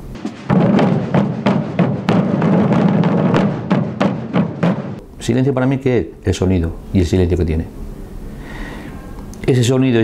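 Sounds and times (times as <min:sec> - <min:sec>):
massed drums rolling: 0:00.0 - 0:05.1.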